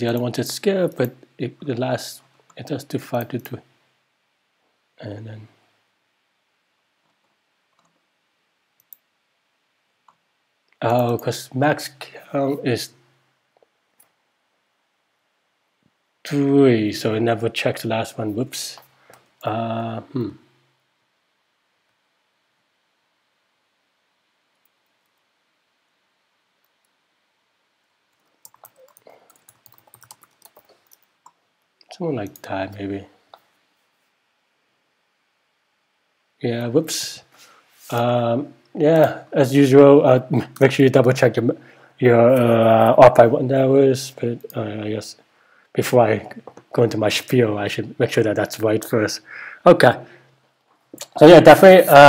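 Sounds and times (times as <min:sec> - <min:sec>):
man saying oh: 0:19.5 - 0:20.4
computer keyboard typing: 0:28.2 - 0:31.4.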